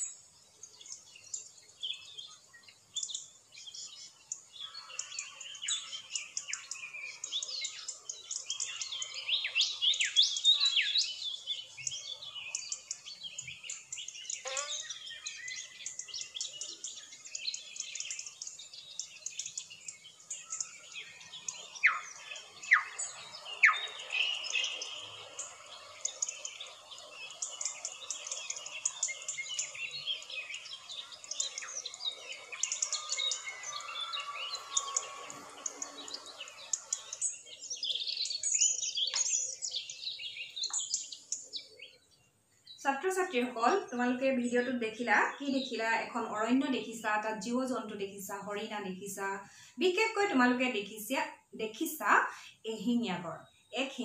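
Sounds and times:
birds chirping in chorus: 0:00.0 - 0:54.0
loud falling bird calls: 0:03.0 - 0:42.7.

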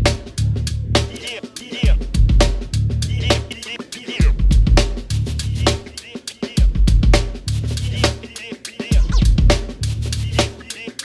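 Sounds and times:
deep sustained bass: 0:00.0 - 0:01.1, 0:02.2 - 0:03.4
drum kit groove: 0:00.0 - 0:11.0.

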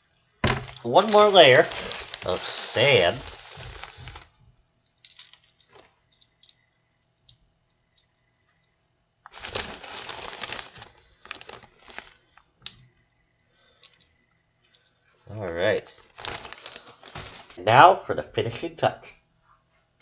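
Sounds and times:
plastic bag crinkling: 0:00.4 - 0:06.5, 0:09.3 - 0:12.8, 0:13.6 - 0:17.9.

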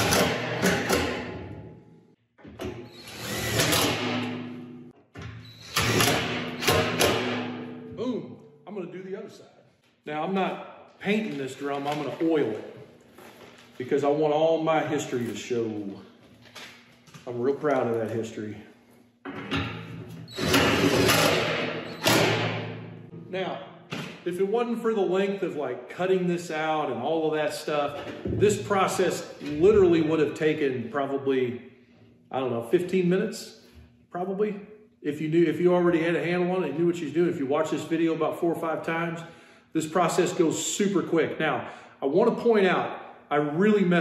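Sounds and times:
impact driver driving screw into metal: 0:00.0 - 0:01.3, 0:05.7 - 0:07.4.

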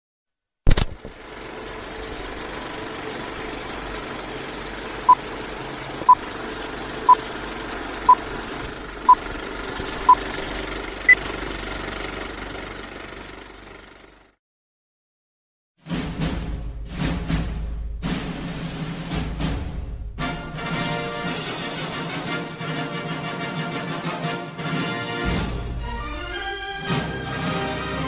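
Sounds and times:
film projector whirring: 0:00.7 - 0:14.2.

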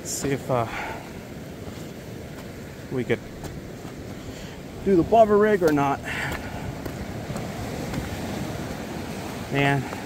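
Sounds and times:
ocean surf: 0:00.0 - 0:10.0
wind rumble on microphone: 0:01.1 - 0:10.0.

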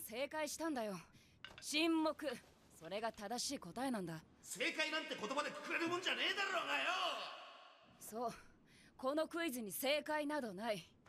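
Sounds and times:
man shouting: 0:05.8 - 0:07.6.

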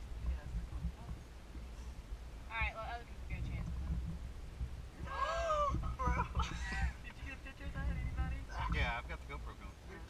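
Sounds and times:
low rumble in car cabin: 0:00.0 - 0:10.0.

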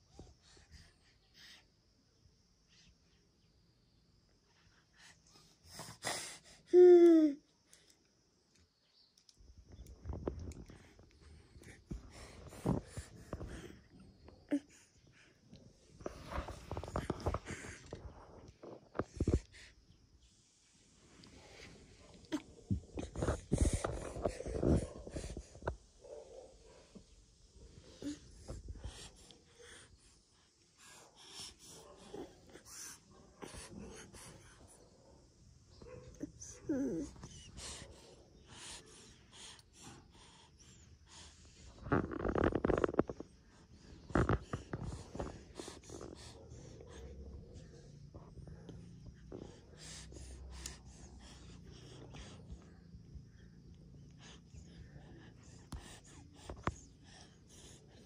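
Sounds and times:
soft breaths: 0:00.0 - 0:03.2, 0:04.2 - 0:08.4, 0:09.4 - 0:58.0
toddler breathing noisily: 0:04.8 - 0:07.4, 0:11.0 - 0:20.0, 0:21.3 - 0:25.9, 0:36.2 - 0:41.9, 0:43.9 - 0:47.2.

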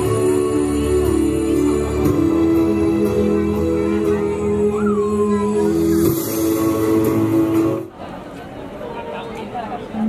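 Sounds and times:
ambient droning music: 0:00.0 - 0:07.9.

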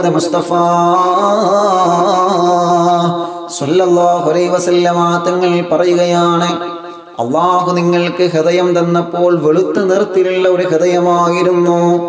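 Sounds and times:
man chanting into microphone: 0:00.0 - 0:12.0.

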